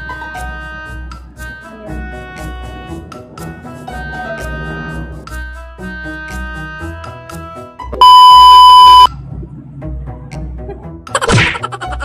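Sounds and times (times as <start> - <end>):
background music: 0.0 - 8.0, 9.1 - 12.0
loud electronic beep: 8.0 - 9.1.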